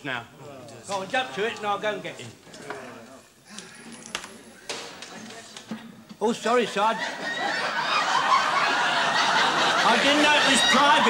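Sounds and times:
low indistinct voices: 0.0s - 6.2s.

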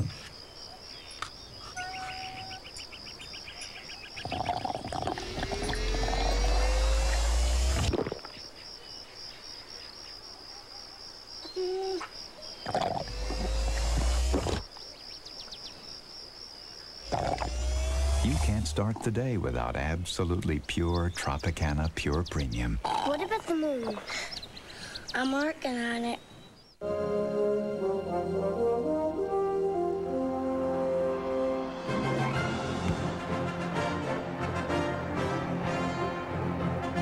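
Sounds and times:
crickets chirping: 0.0s - 28.8s
children sucking through straws: 4.2s - 8.3s, 12.6s - 14.6s, 17.1s - 18.6s.

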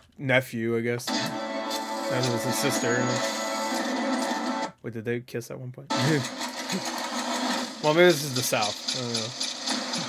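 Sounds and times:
steady mechanical noise: 5.9s - 10.0s.

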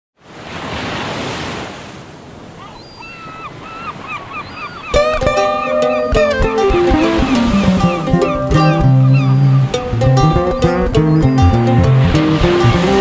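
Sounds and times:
sea waves washing in: 0.2s - 2.6s, 3.3s - 13.0s
seagulls calling: 2.5s - 13.0s
guitar playing: 5.0s - 13.0s.

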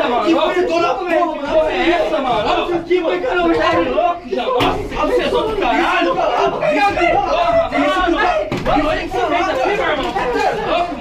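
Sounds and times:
people talking and shouting: 0.0s - 11.0s.

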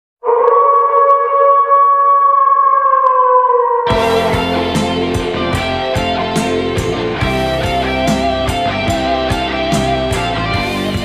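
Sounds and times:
long held note: 3.9s - 7.2s.

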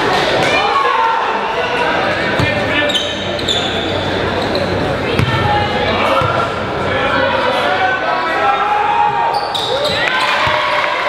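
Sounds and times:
crowd and player voices: 0.0s - 11.0s
sneaker squeaks: 2.4s - 5.5s, 9.3s - 10.6s
basketball bouncing on gym floor: 5.1s - 5.5s.

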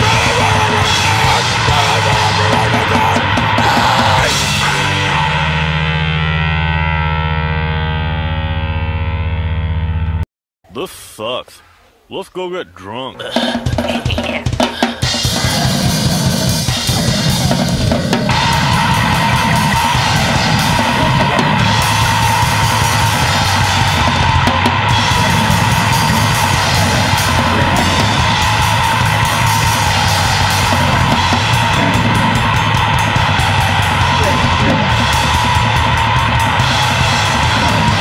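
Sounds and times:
drums: 0.0s - 9.8s, 13.1s - 38.0s
distorted guitar and bass: 0.0s - 10.2s, 13.2s - 38.0s.

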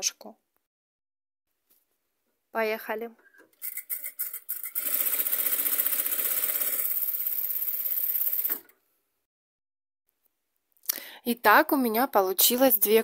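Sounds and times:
sewing machine stitching fast: 3.6s - 8.7s.

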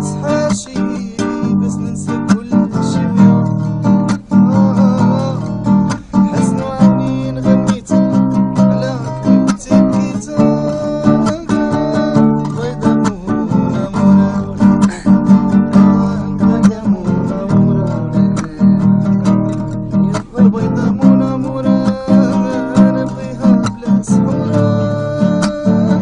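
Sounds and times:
guitar strumming chords: 0.0s - 26.0s.

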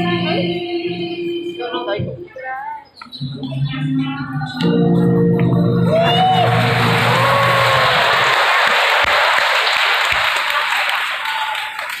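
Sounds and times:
song music: 3.2s - 8.6s
audience applauding: 5.9s - 12.0s.

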